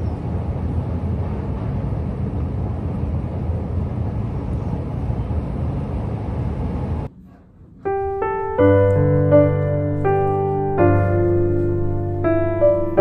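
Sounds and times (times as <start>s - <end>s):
low rumbling noise: 0.0s - 13.0s.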